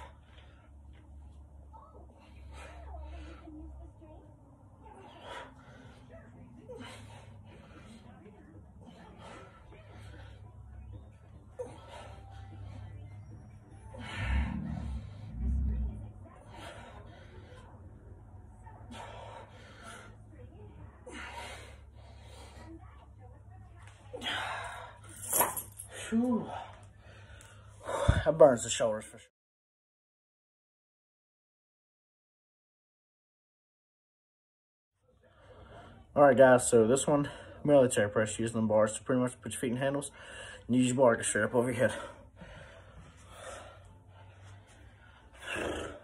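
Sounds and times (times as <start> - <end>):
low hum: 0.0 - 21.0
man breathing hard: 13.7 - 15.7, 26.4 - 28.3, 40.2 - 40.7, 41.8 - 46.0.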